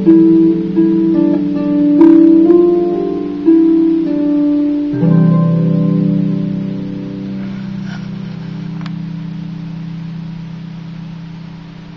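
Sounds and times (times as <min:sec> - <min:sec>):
harp chord ringing: 0:00.0 - 0:11.6.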